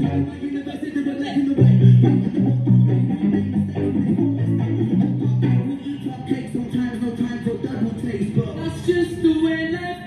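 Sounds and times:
electric guitar low ringing notes: 0.0s - 0.9s, 1.5s - 7.9s.

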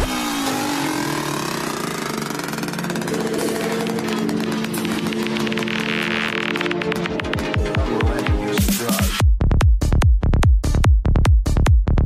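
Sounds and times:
synth lines sliding in pitch: 0.0s - 7.3s
sustained synth drones: 0.0s - 8.7s.

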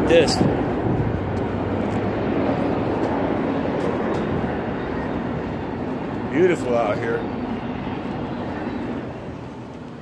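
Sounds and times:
vehicle traffic rumble: 0.0s - 10.0s.

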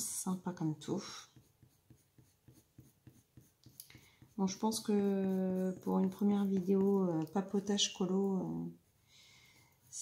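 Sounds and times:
pencil scratching on paper: 0.6s - 8.7s, 9.5s - 10.0s.

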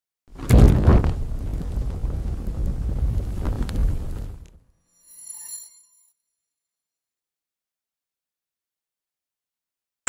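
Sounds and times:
roar of flames: 0.3s - 4.6s
fire crackles: 0.3s - 4.7s.

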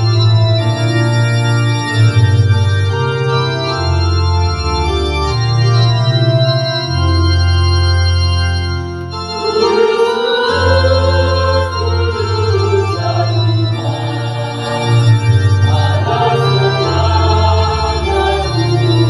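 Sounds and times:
electronic organ chords: 0.0s - 19.0s
choir singing: 9.4s - 19.0s.

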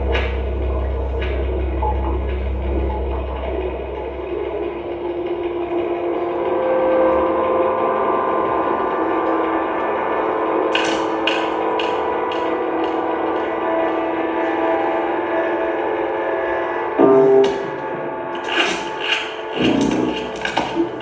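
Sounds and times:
low electronic drone: 0.0s - 21.0s.

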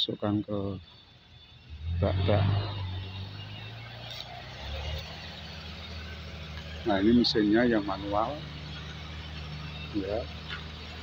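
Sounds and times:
diesel engine running: 0.0s - 11.0s.

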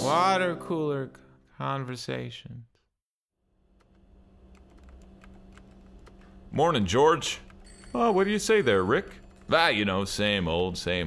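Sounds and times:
keyboard typing clicks: 3.8s - 8.0s, 8.6s - 9.6s.

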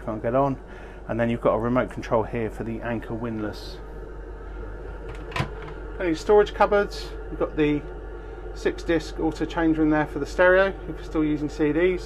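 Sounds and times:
air conditioning hum: 0.0s - 12.0s.

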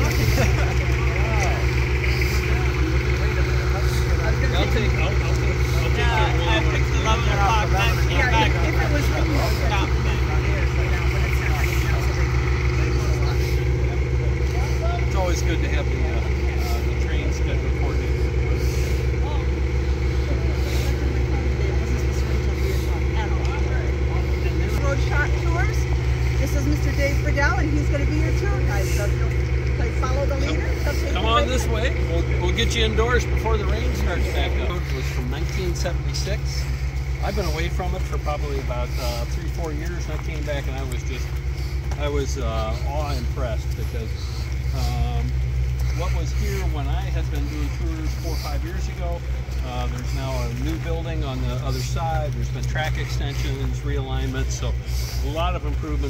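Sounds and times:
low pulsing engine drone: 0.0s - 56.0s
people talking indistinctly: 0.0s - 56.0s.

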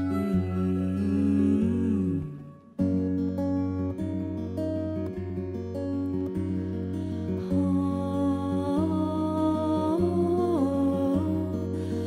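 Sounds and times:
woman humming: 0.0s - 2.7s
acoustic guitar: 0.0s - 12.0s.

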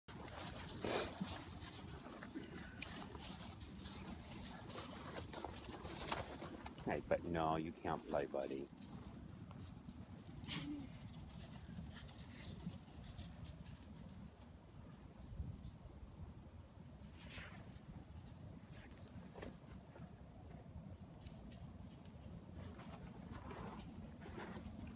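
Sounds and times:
dog snuffling: 0.1s - 6.8s
scuffs and clicks on gravel: 0.1s - 6.9s
dogs moving on gravel: 0.1s - 14.5s.

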